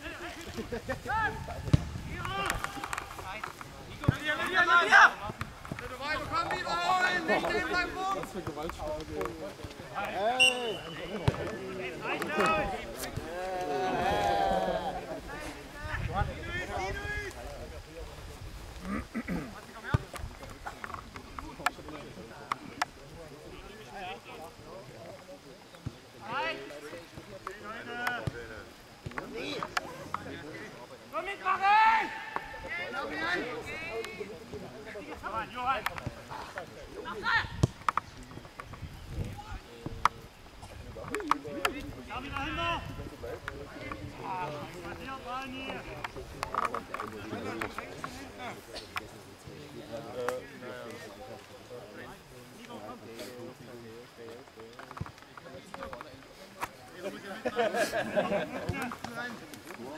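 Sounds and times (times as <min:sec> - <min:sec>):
players calling out: 0:00.0 - 0:15.7
people shouting: 0:13.2 - 0:15.1
loud shouts: 0:31.2 - 0:33.8.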